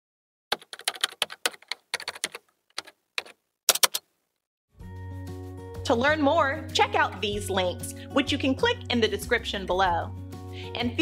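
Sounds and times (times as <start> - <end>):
keyboard key clicks: 0.6 - 4.1.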